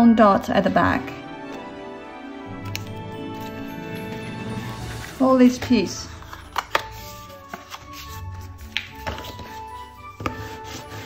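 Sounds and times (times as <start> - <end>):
soft background music: 0.0 - 11.0
card stock tapping and crackling: 6.2 - 9.6.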